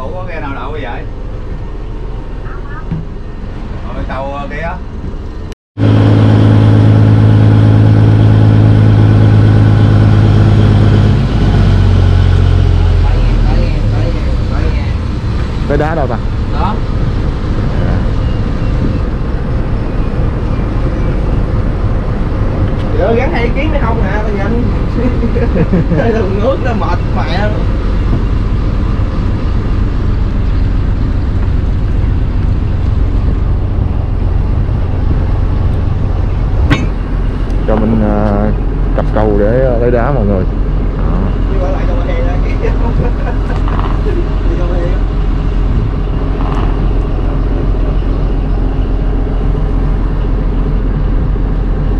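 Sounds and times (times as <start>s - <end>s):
boat diesel engine running: 0.0s - 51.9s
water noise: 0.0s - 51.9s
wind: 0.0s - 51.9s.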